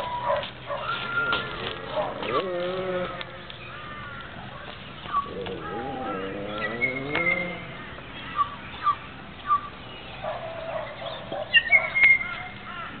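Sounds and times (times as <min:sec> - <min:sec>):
birds chirping: 0:00.0 - 0:13.0.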